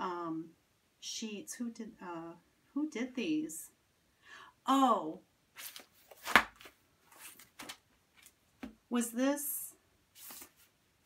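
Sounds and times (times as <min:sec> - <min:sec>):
paper flapping: 0:05.6 - 0:08.3, 0:10.2 - 0:10.7
paper rustling: 0:05.6 - 0:08.7, 0:10.2 - 0:10.8.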